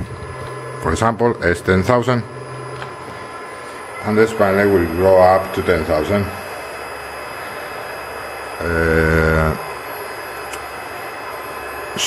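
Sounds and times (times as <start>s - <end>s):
milling spindle hissing: 0.0s - 12.0s
man saying uh: 8.6s - 9.6s.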